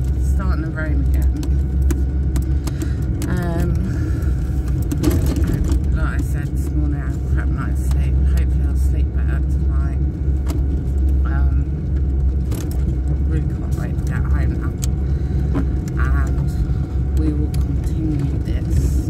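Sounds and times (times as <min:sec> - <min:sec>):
person's voice: 0:00.0 - 0:01.6, 0:03.2 - 0:04.4, 0:05.0 - 0:10.1, 0:11.3 - 0:11.8, 0:13.1 - 0:19.0
car cabin rumble: 0:00.0 - 0:19.0.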